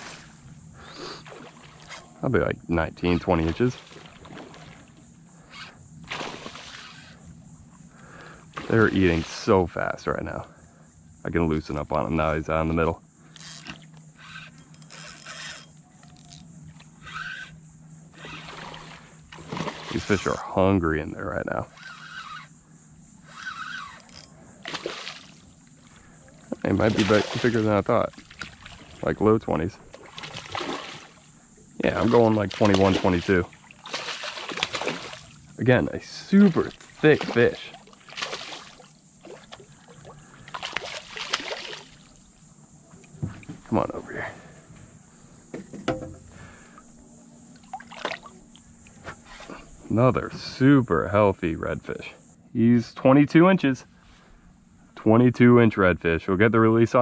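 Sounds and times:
fish splashing in water: 6.1s - 7.1s, 18.3s - 20.2s, 24.6s - 29.0s, 29.9s - 31.3s, 31.9s - 35.5s, 36.3s - 42.2s, 47.6s - 48.4s.

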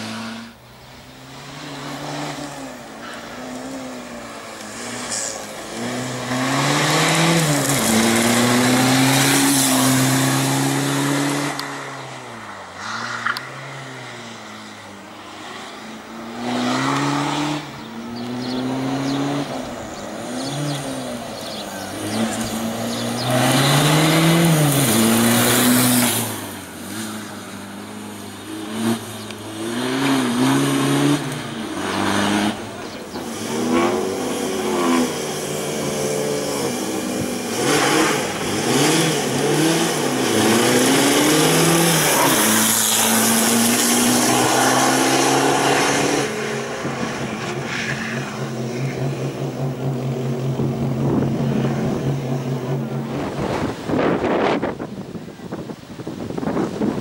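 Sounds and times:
race car engine revving: 0.0s - 55.6s.

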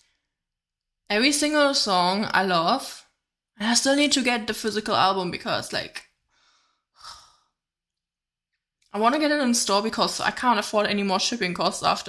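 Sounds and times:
woman speaking: 1.1s - 6.0s, 9.0s - 12.0s.

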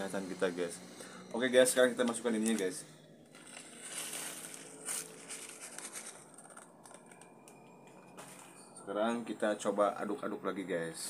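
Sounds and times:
plastic bag crinkling: 3.3s - 8.5s.

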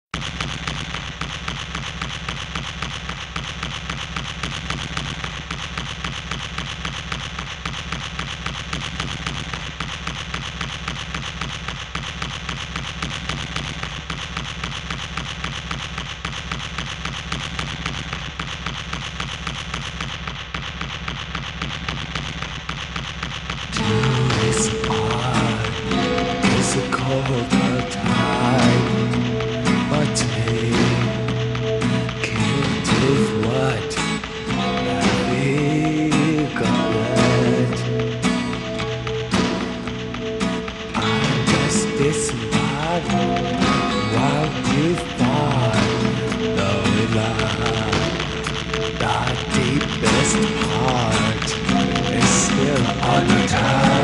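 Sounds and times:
fast clicking music: 0.2s - 54.0s
held synth tone: 23.8s - 54.0s.

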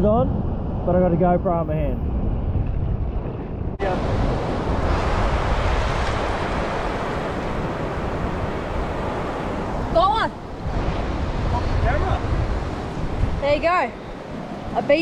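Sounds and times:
wind on microphone: 0.0s - 15.0s
ocean surf washing on beach: 3.8s - 15.0s.

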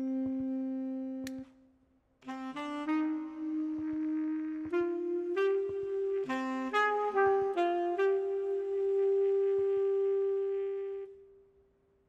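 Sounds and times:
saxophone low note: 0.0s - 1.4s, 2.3s - 11.2s.

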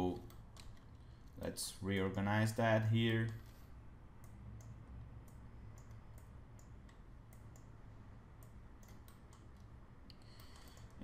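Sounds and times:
low steady hum: 0.0s - 11.0s
computer mouse clicks: 0.1s - 1.4s, 4.2s - 7.8s, 8.4s - 11.0s.

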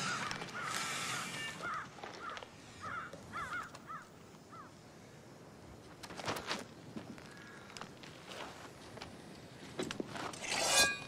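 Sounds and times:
birds calling: 0.0s - 4.8s.

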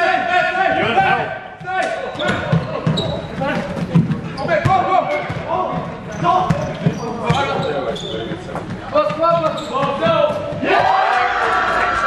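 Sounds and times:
spectators talking: 0.0s - 12.0s.

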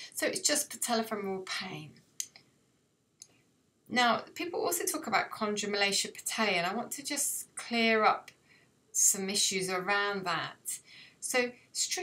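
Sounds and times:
woman speaking: 0.0s - 2.3s, 3.9s - 8.3s, 9.0s - 12.0s.

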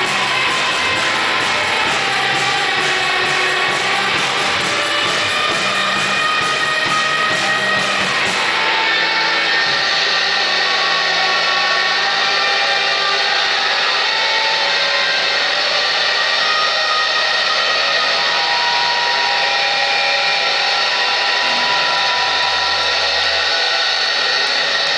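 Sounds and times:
electric guitar feedback drone: 0.0s - 24.9s.

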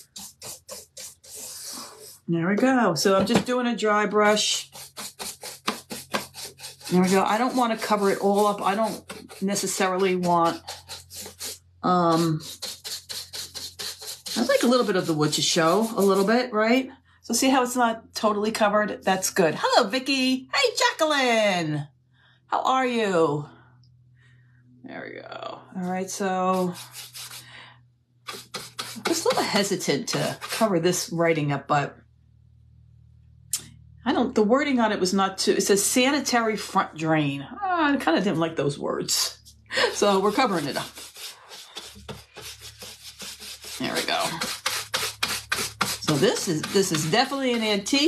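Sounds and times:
paintbrush scrubbing washboard: 0.0s - 2.3s, 4.2s - 16.5s, 25.8s - 27.5s, 28.3s - 30.8s, 39.1s - 48.0s.

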